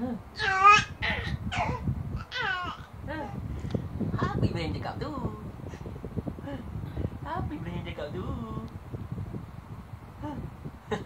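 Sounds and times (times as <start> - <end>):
infant squealing: 0.4 - 2.8.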